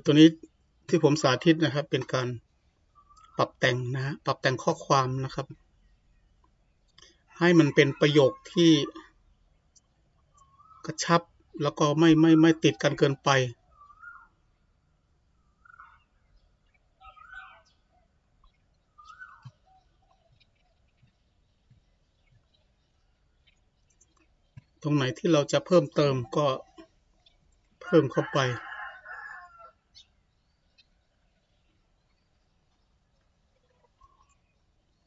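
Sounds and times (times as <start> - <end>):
man speaking: 0.0 - 2.4, 3.4 - 5.6, 7.4 - 9.0, 10.9 - 13.6, 24.8 - 26.8, 27.8 - 28.6
long bird call: 1.0 - 6.3, 6.9 - 14.6, 15.4 - 32.6.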